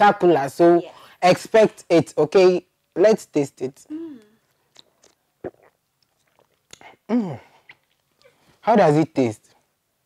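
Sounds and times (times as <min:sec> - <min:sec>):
person humming while tasting: 0:03.9 - 0:04.4, 0:06.8 - 0:07.5
mouth clicks and lip smacks: 0:04.2 - 0:08.4.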